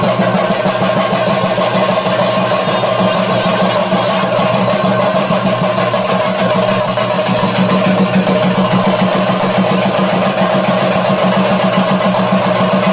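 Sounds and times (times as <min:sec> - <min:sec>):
drums beaten with sticks: 0:00.0 - 0:12.9.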